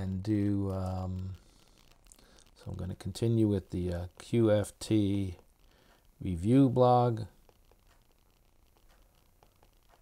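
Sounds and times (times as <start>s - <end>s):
stylus tapping on tablet screen: 7.4s - 10.0s.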